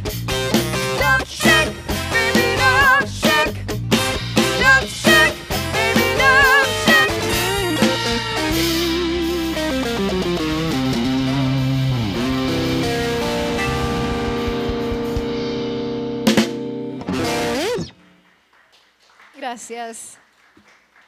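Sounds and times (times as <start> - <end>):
bass and drums: 0.0 - 17.9
electric guitar lead line: 0.0 - 18.2.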